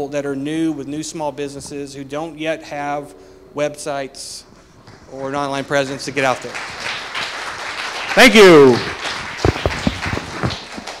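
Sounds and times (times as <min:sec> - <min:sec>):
audience applause: 0:05.6 - 0:11.0.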